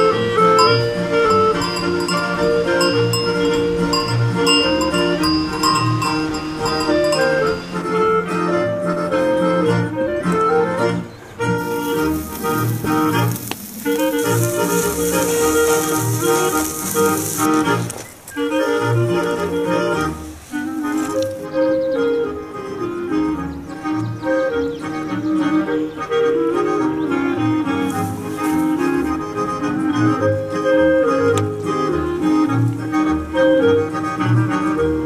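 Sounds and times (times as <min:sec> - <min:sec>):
reedy folk melody: 0:00.0 - 0:35.0
steady hiss: 0:11.4 - 0:21.6, 0:27.8 - 0:29.1.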